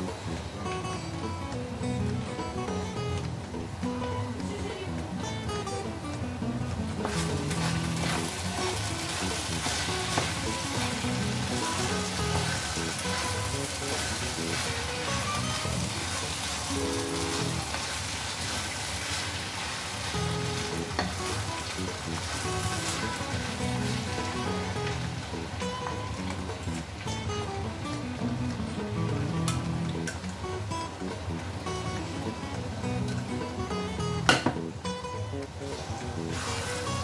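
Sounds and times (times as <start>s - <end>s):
meat sizzling in a frying pan: 7.1s - 26.0s.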